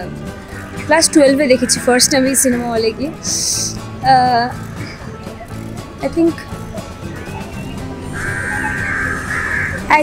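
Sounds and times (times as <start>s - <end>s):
soft background music: 0.0s - 10.0s
harsh bird call: 7.1s - 9.9s.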